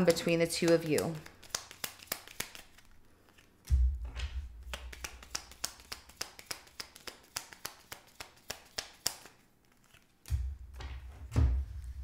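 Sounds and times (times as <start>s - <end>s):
cards clicking as dealt: 0.6s - 10.4s.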